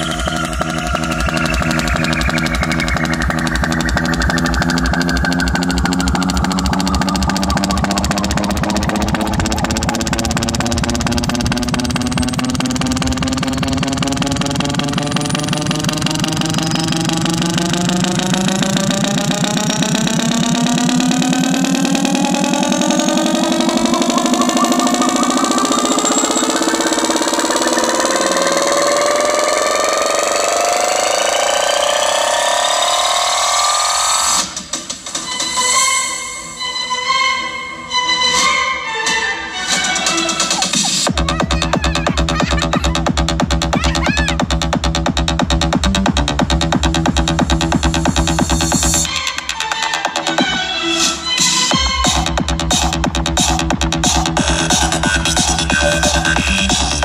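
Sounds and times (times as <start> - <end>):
fast pulsing bass: 0.0 - 36.6, 39.6 - 50.7, 51.5 - 57.0
electronic music with gliding synths: 0.0 - 57.0.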